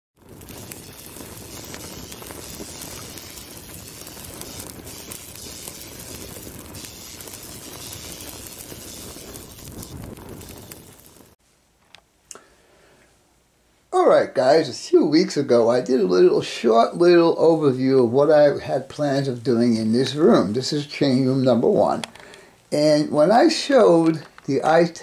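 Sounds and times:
fire burning and crackling: 0:00.2 - 0:11.4, 0:14.1 - 0:25.0.

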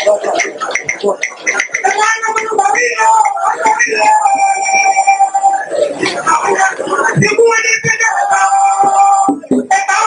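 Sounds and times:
woman singing high note: 0:01.8 - 0:05.7.

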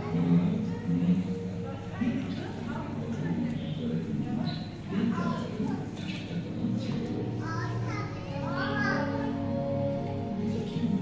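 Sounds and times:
children calling and chattering: 0:00.0 - 0:11.0
background music with held tones: 0:05.8 - 0:11.0.

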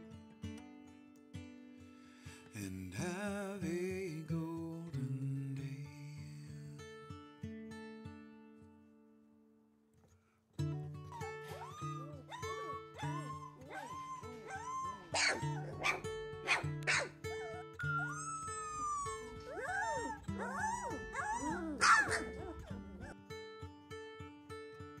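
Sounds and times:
acoustic guitar music: 0:00.0 - 0:25.0
puppies whimpering and yipping: 0:11.2 - 0:23.2.

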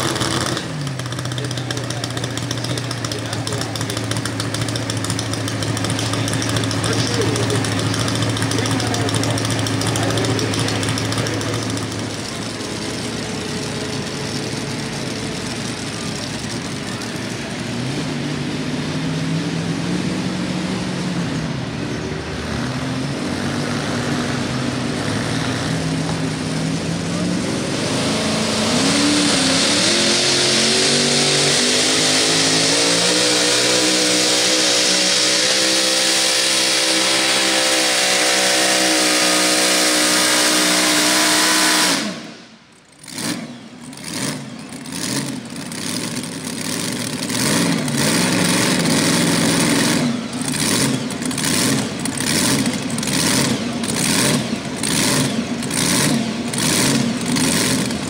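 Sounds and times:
engine throttle blips: 0:00.0 - 0:58.0
tractor engine running flat out: 0:00.0 - 0:58.0.

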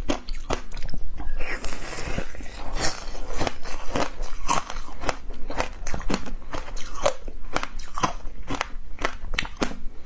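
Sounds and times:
chewing crunchy ice cream: 0:00.0 - 0:10.0.

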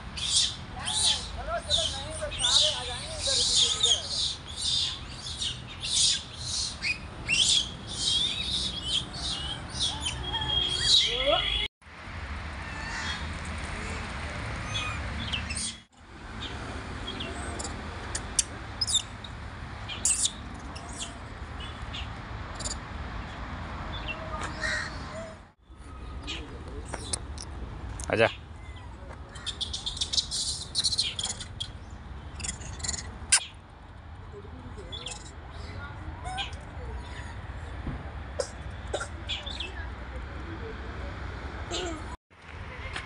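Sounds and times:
birds chirping: 0:00.1 - 0:11.7, 0:14.6 - 0:33.7, 0:34.7 - 0:37.8.

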